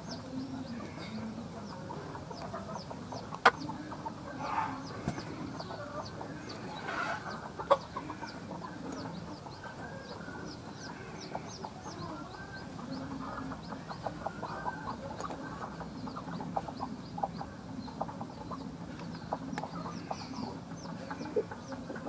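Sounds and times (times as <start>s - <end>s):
hen clucking: 0.0s - 22.0s.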